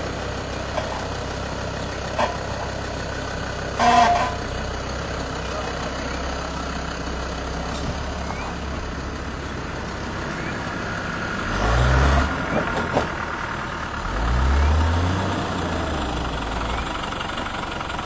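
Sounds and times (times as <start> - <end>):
off-road vehicle engine revving: 3.7 - 18.0.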